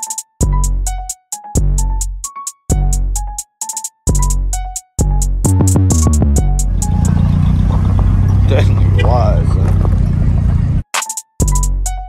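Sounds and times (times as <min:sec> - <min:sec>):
truck engine droning: 0:06.4 - 0:10.8
people's voices: 0:07.1 - 0:10.5.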